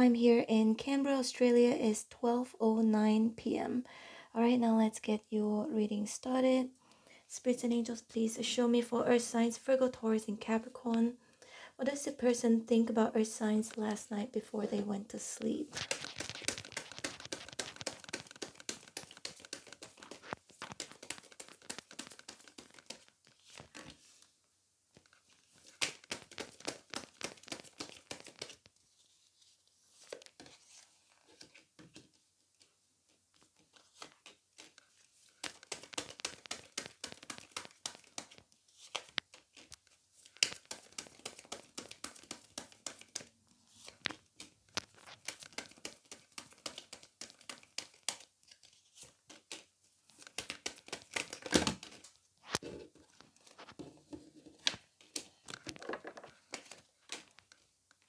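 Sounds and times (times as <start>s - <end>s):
cards shuffling and slapping: 15.4s - 24.3s, 25.0s - 32.7s, 33.3s - 57.6s.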